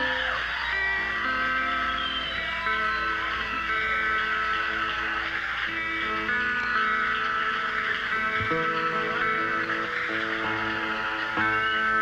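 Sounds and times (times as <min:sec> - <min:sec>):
bass guitar: 0:00.0 - 0:12.0
electric guitar chords: 0:00.0 - 0:12.0
keyboards: 0:00.0 - 0:12.0.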